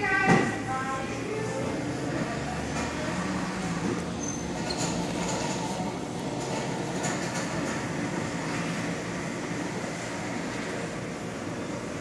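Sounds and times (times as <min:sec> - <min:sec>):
room rumble and hiss: 0:00.0 - 0:12.0.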